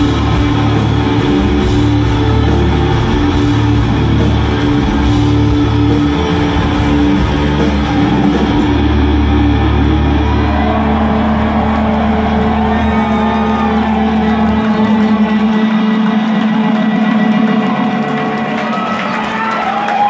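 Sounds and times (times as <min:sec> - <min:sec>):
deep bass note: 0:00.0 - 0:16.1
rock band droning chord: 0:00.0 - 0:19.0
crowd cheering: 0:00.0 - 0:20.0.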